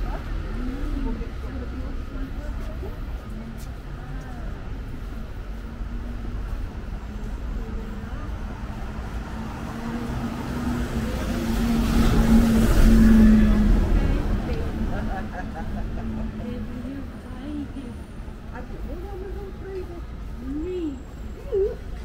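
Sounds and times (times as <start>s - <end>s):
steady traffic engine hum: 0.0s - 22.0s
vehicle passing: 0.0s - 22.0s.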